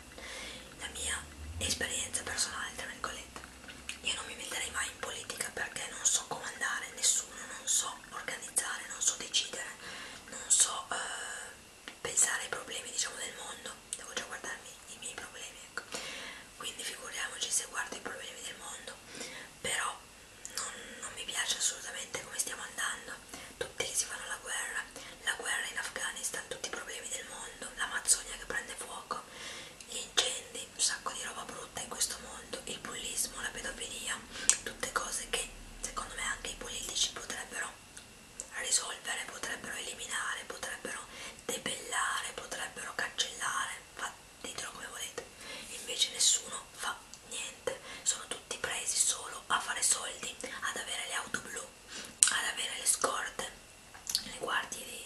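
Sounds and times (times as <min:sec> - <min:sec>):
woman whispering: 0:00.7 - 0:03.4, 0:04.0 - 0:15.9, 0:16.6 - 0:29.3, 0:29.9 - 0:37.8, 0:38.4 - 0:55.0.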